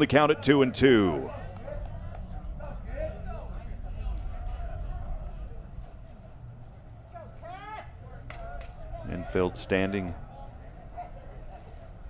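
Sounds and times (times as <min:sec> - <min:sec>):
crowd rumble: 0:00.0 - 0:12.0.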